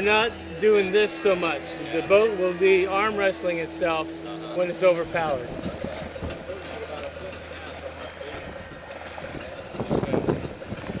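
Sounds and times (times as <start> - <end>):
voices: 0.0 - 11.0
water noise: 0.0 - 11.0
wind: 0.0 - 11.0.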